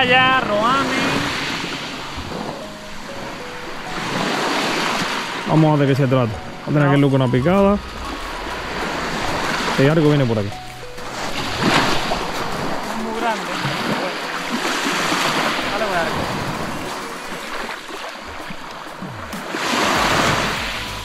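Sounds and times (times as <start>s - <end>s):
sea surf washing onto beach: 0.0s - 21.0s.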